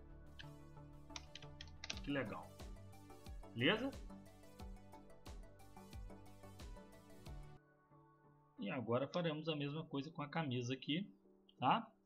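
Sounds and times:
soft background music: 0.0 - 12.0
keyboard typing: 0.4 - 2.1.

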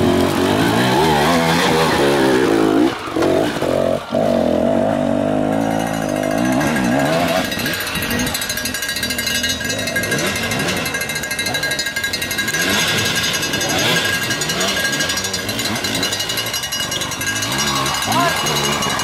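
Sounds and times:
dirt bike engines revving: 0.0 - 19.0.

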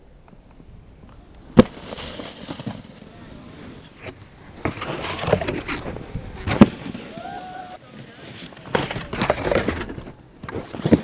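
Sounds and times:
snowboard landing smack: 1.5 - 3.1, 6.4 - 7.3
snowboard scraping hard snow: 1.6 - 9.6
snowboard scraping wooden log: 1.6 - 11.0.

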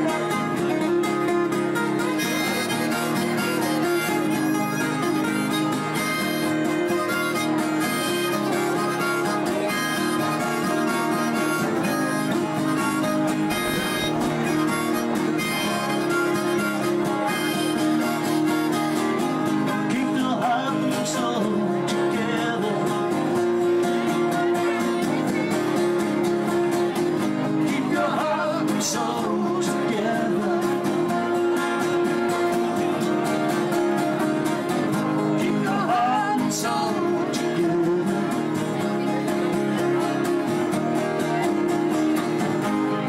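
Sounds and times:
harmonica solo: 0.0 - 19.8
strummed acoustic guitars: 0.0 - 43.0.

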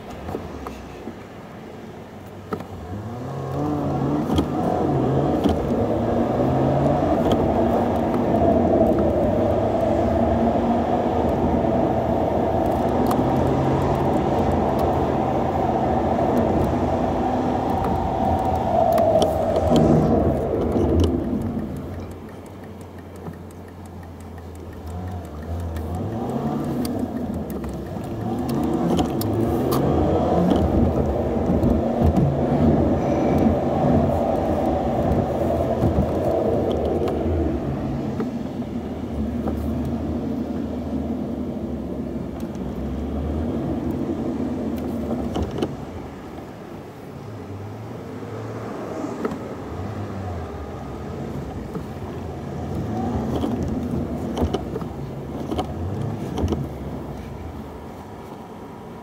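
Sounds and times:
car engine and tyre noise: 0.0 - 59.0.

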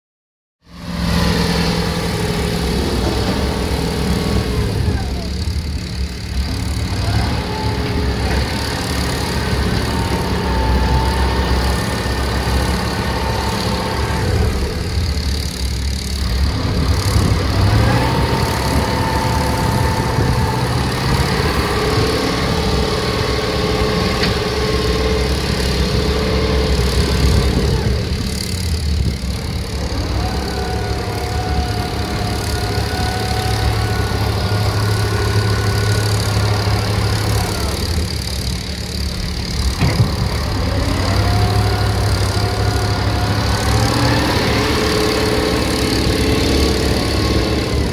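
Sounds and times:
diesel truck engine revving: 0.7 - 47.9
wheels spinning in mud: 1.0 - 47.9.

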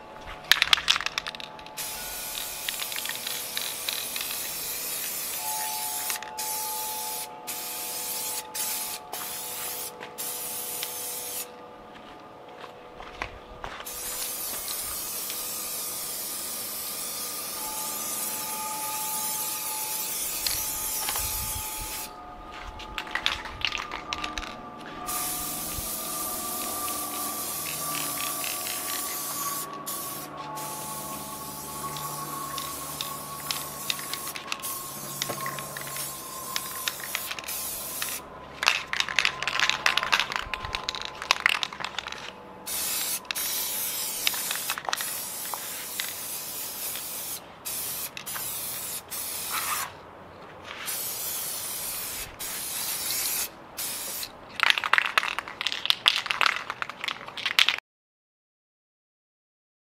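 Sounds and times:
aerosol spray can hissing: 1.8 - 11.5, 13.8 - 22.1, 24.2 - 38.2, 42.7 - 49.9, 50.8 - 54.3.

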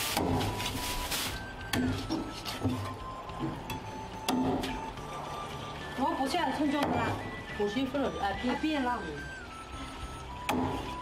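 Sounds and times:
background music: 0.0 - 11.0
cleaver chopping on wooden board: 10.5 - 10.8.

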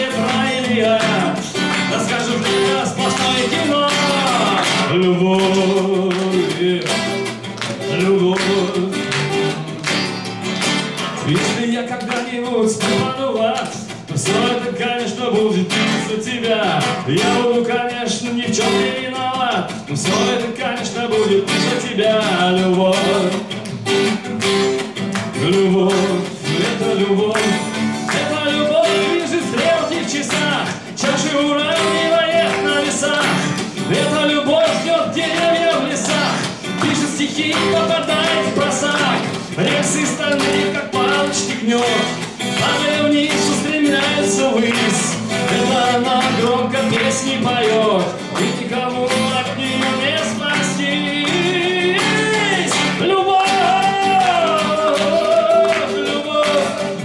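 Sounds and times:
man singing: 0.0 - 10.2, 11.0 - 24.0, 24.9 - 57.0
strummed acoustic guitar: 0.0 - 57.0.

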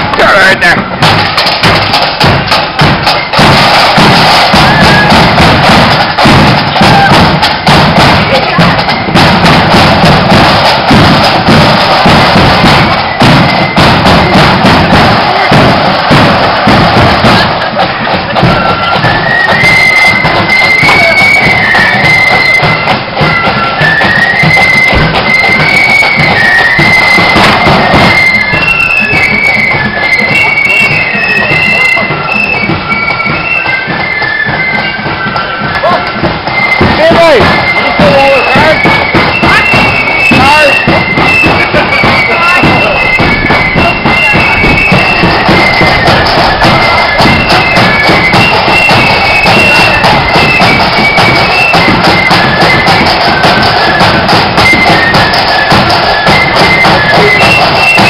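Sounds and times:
high flute melody: 0.0 - 58.0
marching drums beating: 0.0 - 58.0.

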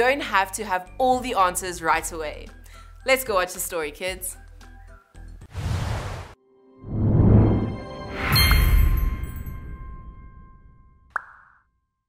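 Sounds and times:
cartoon pop rising in pitch: 11.1 - 11.6.

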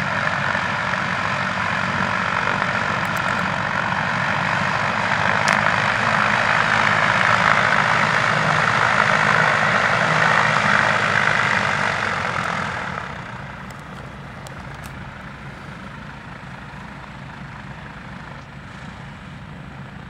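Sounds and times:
propeller engines running: 0.0 - 20.0.

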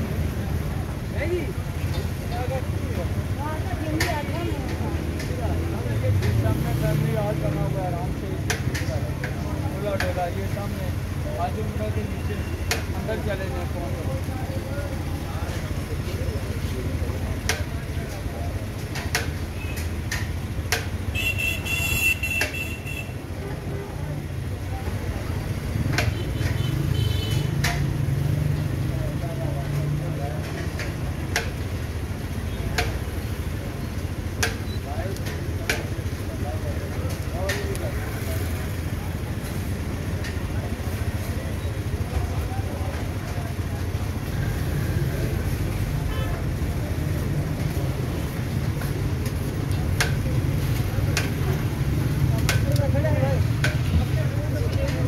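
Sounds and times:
indistinct crowd voices: 0.0 - 55.0
low street rumble: 0.0 - 55.0.

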